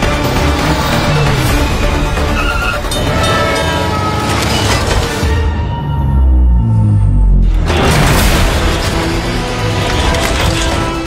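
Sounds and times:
soundtrack music: 0.0 - 11.0.

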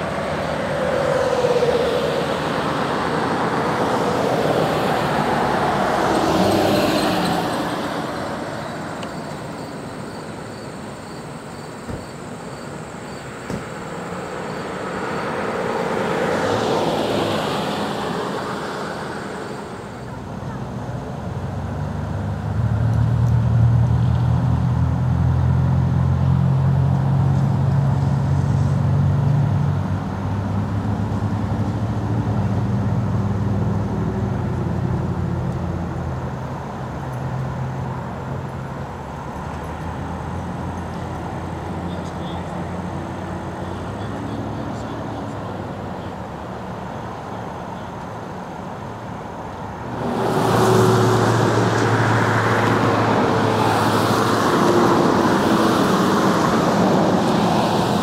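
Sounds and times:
vehicle passing: 0.0 - 9.6, 13.1 - 36.4, 49.7 - 58.0
vehicle engine humming: 0.0 - 58.0.

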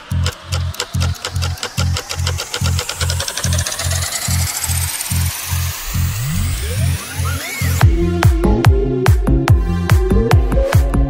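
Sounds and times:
falling pitch glide: 0.0 - 11.0
rising sweep: 0.0 - 11.0
pounding bass kick: 7.8 - 11.0.

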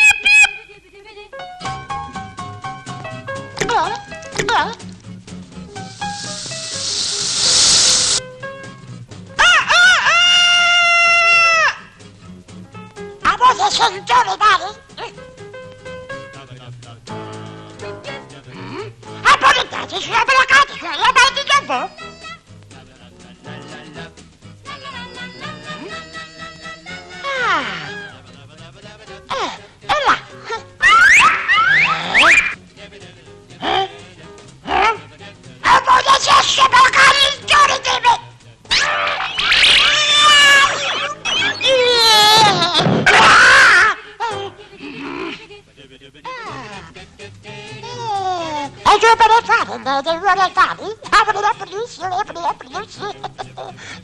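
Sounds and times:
faint background music: 0.0 - 54.0
hissing whoosh: 5.8 - 8.2
man's gibberish cartoon voice: 18.4 - 21.8, 27.1 - 28.2, 33.6 - 42.8, 43.9 - 47.1, 47.9 - 53.8
man's cartoon gibberish cries: 25.7 - 28.2, 38.8 - 45.6, 46.2 - 47.0, 52.7 - 54.0.

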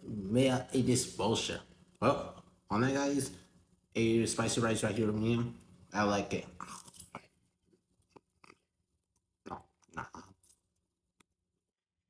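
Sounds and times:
person chewing: 6.6 - 10.7
wet mouth clicks and smacks: 8.0 - 8.7.

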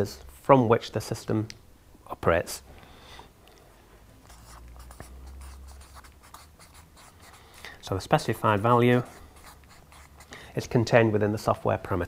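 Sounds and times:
marker scratching on paper: 4.2 - 10.4.

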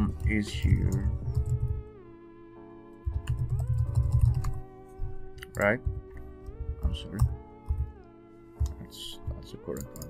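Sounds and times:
background music with sustained tones: 0.0 - 10.0
computer keyboard typing: 0.1 - 1.8, 3.0 - 4.6, 5.4 - 8.0, 9.6 - 10.0.

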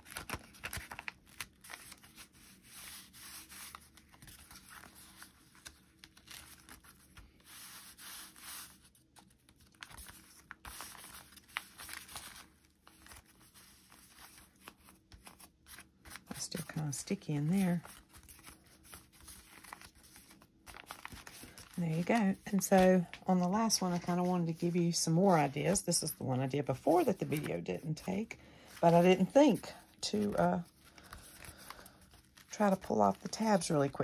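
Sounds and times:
paper envelopes rustling: 0.0 - 34.0.

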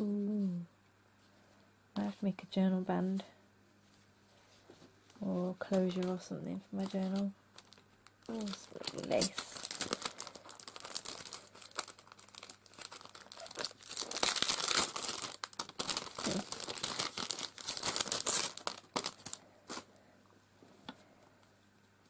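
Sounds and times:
plastic packet crinkling: 6.8 - 19.9.

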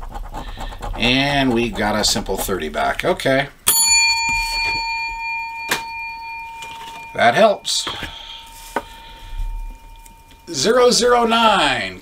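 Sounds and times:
bell ringing: 3.7 - 11.9.

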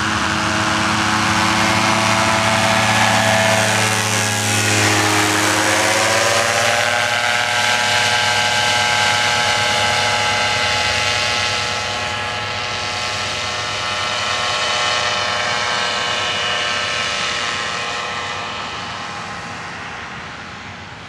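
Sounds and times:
paramotor engine at full power: 0.0 - 21.0.

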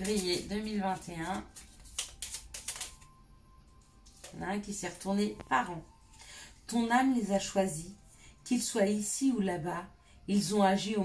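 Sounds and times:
cards being shuffled: 0.0 - 3.1, 4.1 - 5.0.

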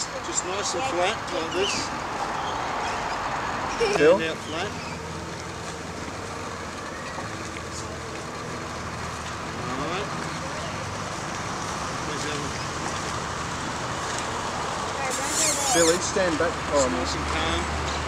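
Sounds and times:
low traffic rumble: 0.0 - 18.0
faint voices: 14.6 - 18.0.

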